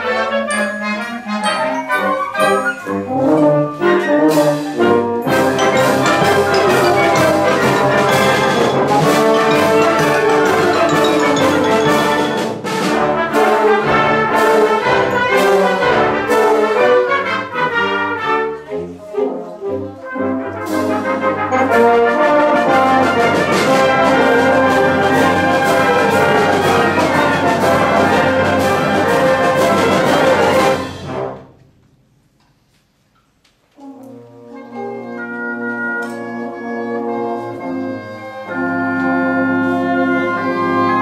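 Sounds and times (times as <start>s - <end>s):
concert wind band playing: 0.0s - 31.8s, 33.8s - 41.0s.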